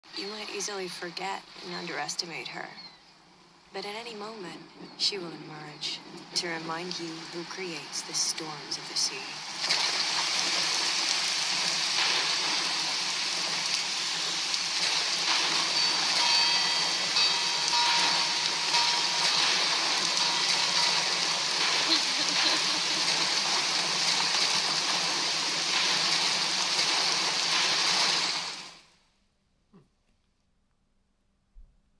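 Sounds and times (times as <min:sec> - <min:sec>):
rain: 0:00.0 - 0:29.0
waves: 0:00.1 - 0:02.4, 0:06.0 - 0:28.8.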